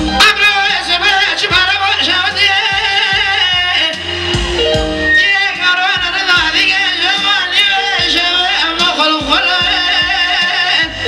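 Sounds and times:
man singing into a microphone: 0.0s - 4.4s, 5.0s - 11.0s
amplified band playing: 0.0s - 11.0s
drum hits: 2.7s - 5.1s.

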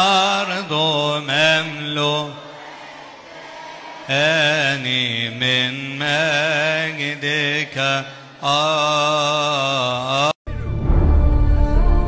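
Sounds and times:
man chanting a hymn: 0.0s - 2.6s, 4.1s - 10.4s.

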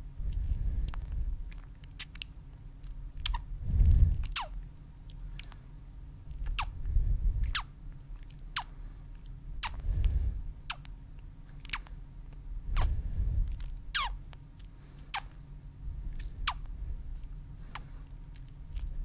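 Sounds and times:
soft low rumbles: 0.0s - 19.0s
wet kisses and lip pops: 0.9s - 3.4s, 4.2s - 4.6s, 6.4s - 6.7s, 9.6s - 9.8s, 10.7s - 11.0s, 13.5s - 14.2s, 15.1s - 15.4s.

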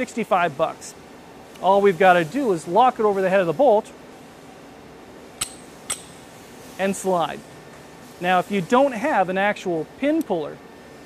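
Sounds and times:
short metallic clicks: 5.4s - 6.2s.

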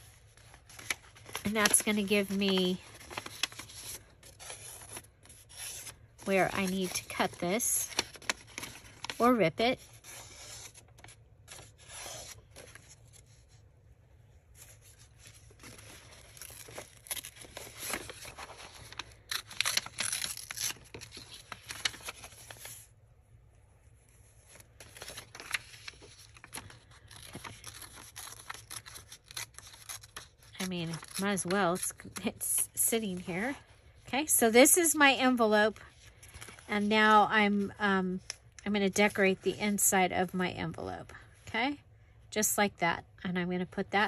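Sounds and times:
paper rustling: 0.0s - 13.6s, 14.5s - 22.9s, 23.8s - 32.2s
book page tearing: 14.8s - 22.8s, 24.8s - 31.6s.

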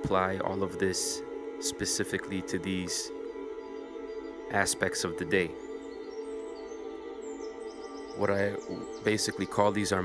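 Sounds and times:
soft ambient music: 0.0s - 10.0s
faint high bird chirps: 2.6s - 10.0s.

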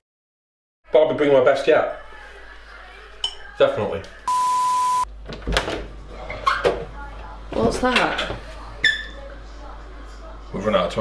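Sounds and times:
censor bleep: 4.3s - 5.1s.

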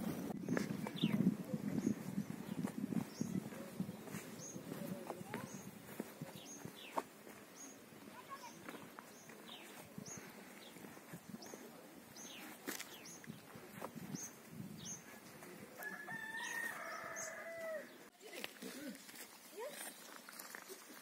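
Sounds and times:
rooster crowing: 15.8s - 18.0s.

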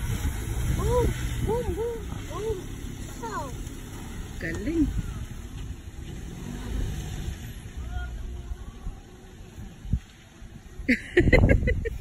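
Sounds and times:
truck engine rumbling: 0.0s - 12.0s
faint voices: 7.6s - 10.7s.

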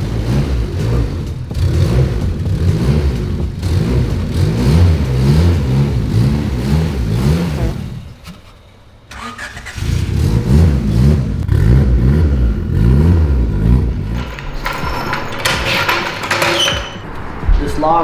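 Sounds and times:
car engine revving: 0.0s - 14.8s.

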